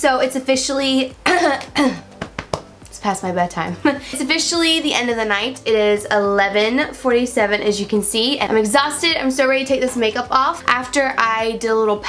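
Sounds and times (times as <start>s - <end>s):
woman coughing: 1.2s - 2.1s.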